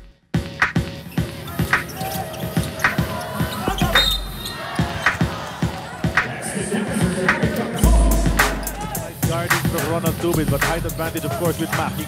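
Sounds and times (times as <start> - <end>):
sneaker squeak: 1.1 - 5.2.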